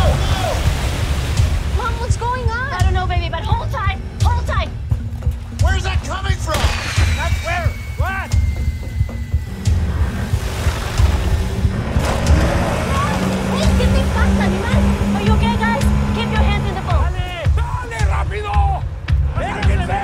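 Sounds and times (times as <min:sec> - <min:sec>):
people shouting: 0:00.0 - 0:00.7, 0:12.5 - 0:20.0
wash of noise: 0:00.0 - 0:02.5, 0:09.1 - 0:16.9
dramatic music with pulsing beat: 0:00.0 - 0:20.0.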